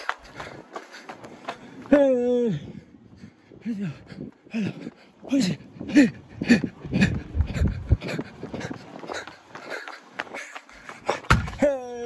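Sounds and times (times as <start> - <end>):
man breathing hard: 0.0 - 1.9, 2.5 - 11.3
footsteps: 0.0 - 2.0, 6.6 - 11.7.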